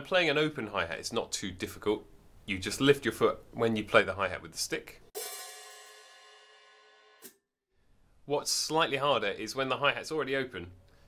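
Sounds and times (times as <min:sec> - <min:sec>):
open hi-hat ringing: 0:05.2 - 0:07.3.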